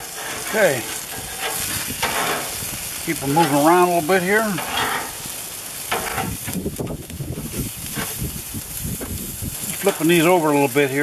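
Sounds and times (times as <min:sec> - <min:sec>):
metal spatula scraping: 0:00.0 - 0:05.3, 0:05.9 - 0:06.6
patties sizzling on a grill: 0:00.0 - 0:11.0.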